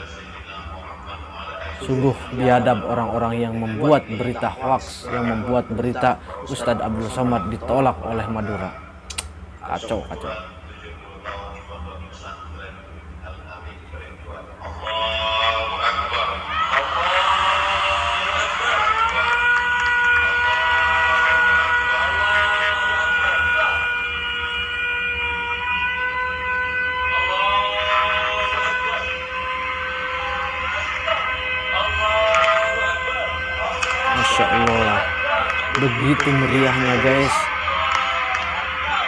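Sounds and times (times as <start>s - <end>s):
electric siren wailing: 14.6s - 39.0s.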